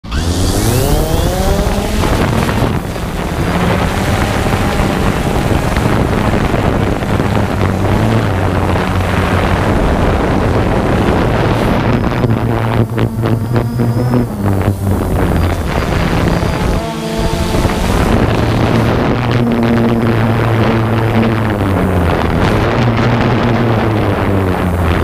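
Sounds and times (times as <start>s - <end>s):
quadcopter rotor buzz: 0.0s - 25.0s.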